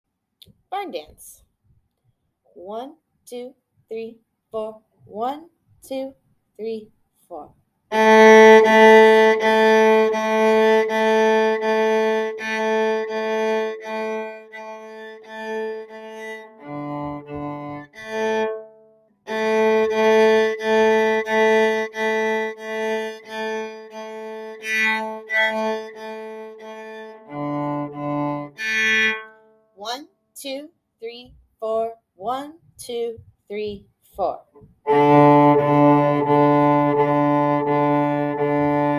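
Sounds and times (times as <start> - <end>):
bowed cello tune: 7.9 - 29.5, 34.6 - 38.9.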